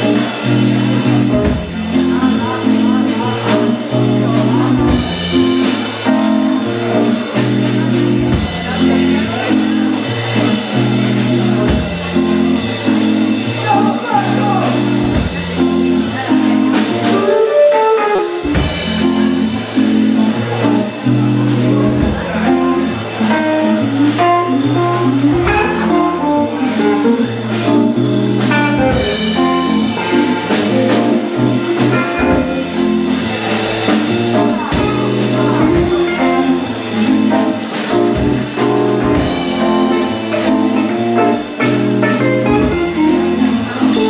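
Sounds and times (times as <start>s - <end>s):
low bass line: 0.0s - 17.3s, 18.2s - 44.0s
drum kit beat: 0.0s - 44.0s
electric guitar: 0.0s - 44.0s
keyboard: 0.0s - 44.0s.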